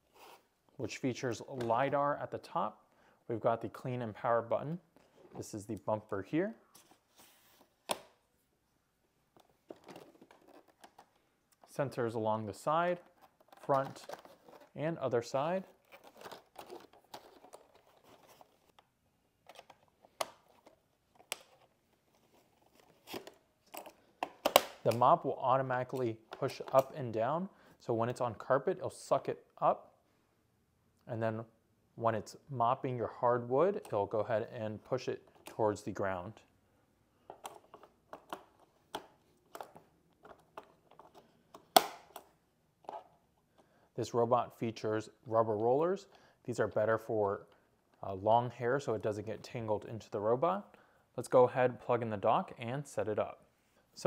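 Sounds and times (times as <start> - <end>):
plastic packaging rustling: 9.4 - 11.3, 12.9 - 14.9, 15.6 - 18.8.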